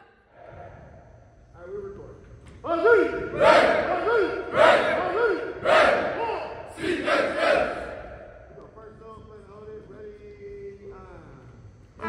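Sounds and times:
group shouting chant: 0:03.0 - 0:08.3.

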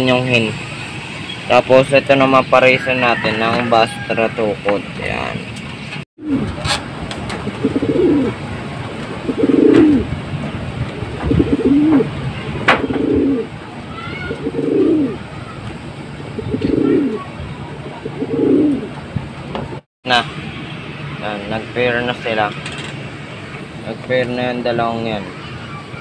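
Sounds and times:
pigeon cooing: 0:06.2 - 0:06.8, 0:07.4 - 0:08.4, 0:09.2 - 0:10.2, 0:11.0 - 0:15.3, 0:16.3 - 0:19.0.

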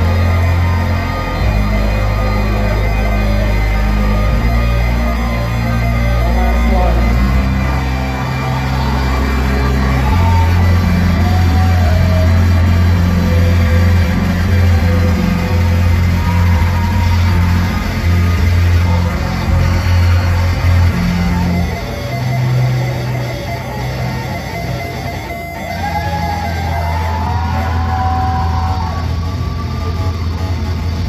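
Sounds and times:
live band music through speakers: 0:00.0 - 0:31.0
sustained low bass notes: 0:00.0 - 0:31.0.

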